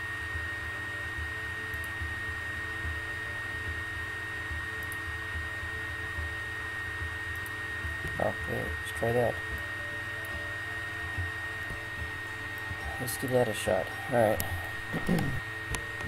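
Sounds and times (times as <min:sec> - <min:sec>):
background hiss and hum: 0:00.0 - 0:16.0
high whine: 0:00.0 - 0:16.0.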